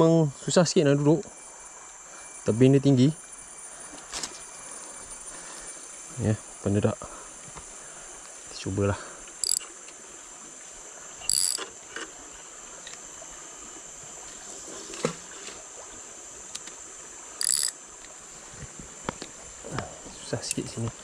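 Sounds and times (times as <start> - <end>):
high-pitched insect drone: 0.0 - 14.2, 15.7 - 21.0
light reel clicks: 9.3 - 10.0, 11.3 - 12.1, 17.4 - 18.2
fishing reel mechanical whirr: 9.4 - 9.7, 11.2 - 11.7, 17.4 - 17.8.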